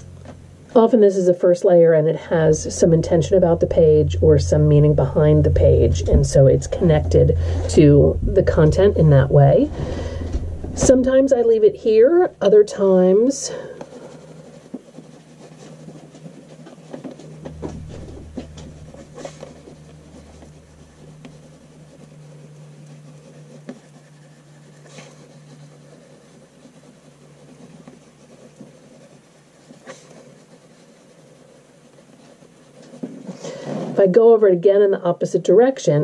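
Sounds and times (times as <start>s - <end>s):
low hum: 0.0s - 33.0s
pencil scratching on paper: 8.4s - 34.3s.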